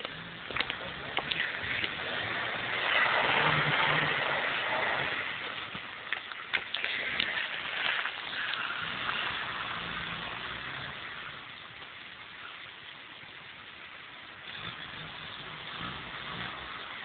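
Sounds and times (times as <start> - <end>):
car engine running at low revs: 0.0 - 6.1, 6.8 - 12.6, 14.2 - 17.0
steady hiss: 0.0 - 17.0.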